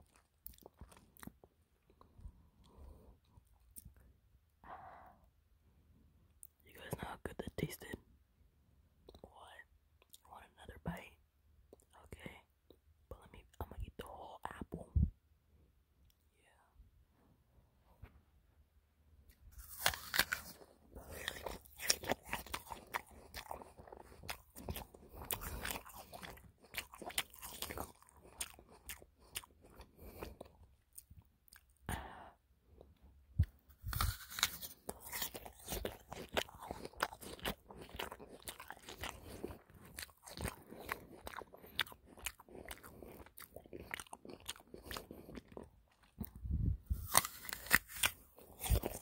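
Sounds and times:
crunchy apple chewing: 0.0s - 4.0s, 19.3s - 32.0s, 32.8s - 49.0s.

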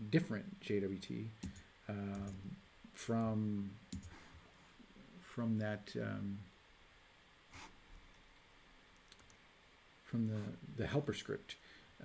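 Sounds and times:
computer mouse clicks: 3.9s - 4.1s, 9.0s - 9.4s.

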